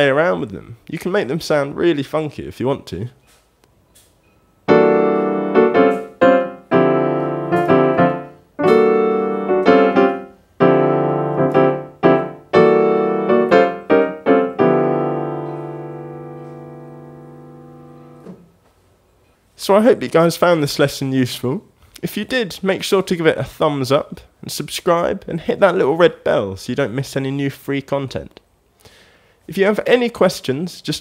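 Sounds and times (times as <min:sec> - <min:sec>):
piano chord stabs: 0:04.7 - 0:18.4.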